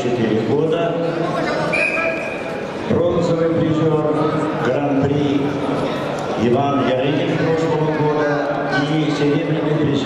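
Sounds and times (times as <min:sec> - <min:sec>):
murmur of indoor crowd: 0:00.0 - 0:10.0
referee's whistle: 0:01.7 - 0:02.5.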